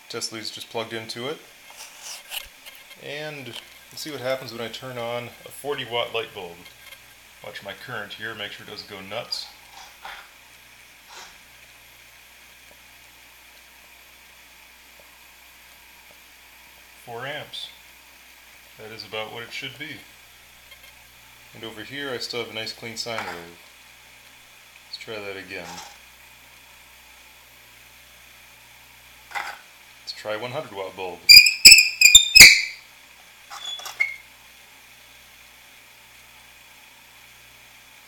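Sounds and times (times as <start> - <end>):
faint steady hiss: 0.0 - 31.4
thin high tone: 31.3 - 32.8.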